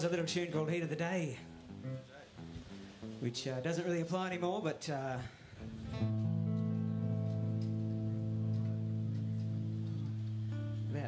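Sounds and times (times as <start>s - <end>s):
band chord on amplified guitars: 5.6s - 11.0s.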